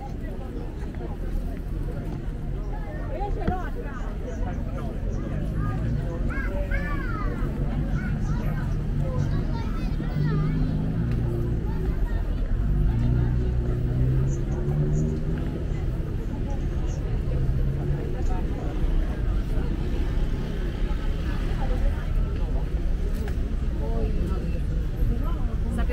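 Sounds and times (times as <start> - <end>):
crowd talking: 0.0 - 25.9
traffic noise: 0.0 - 25.9.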